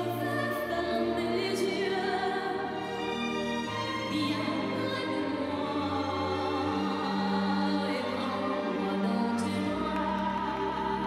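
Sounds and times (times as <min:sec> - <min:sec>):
orchestra playing: 0:00.0 - 0:11.0.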